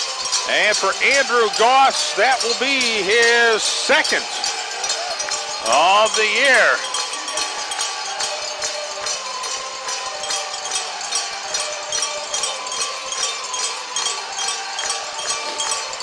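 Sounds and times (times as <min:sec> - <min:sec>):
arena crowd noise: 0:00.0 - 0:16.0
cowbell rung rapidly: 0:00.0 - 0:16.0.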